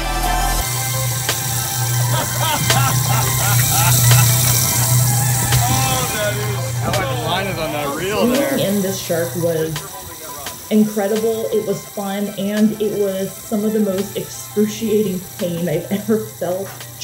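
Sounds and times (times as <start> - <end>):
background music: 0.0 - 17.0
boat motor hum: 0.0 - 17.0
water hiss: 0.1 - 17.0
scattered voices: 1.3 - 17.0.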